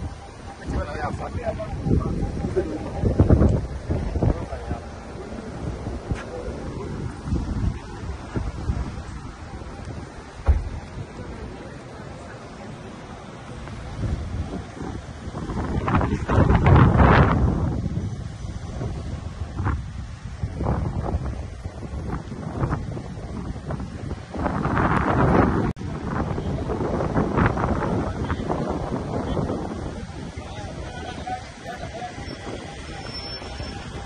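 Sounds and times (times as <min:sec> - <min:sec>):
low rumble of slow cars: 0:00.0 - 0:34.0
wind buffeting microphone: 0:00.0 - 0:34.0.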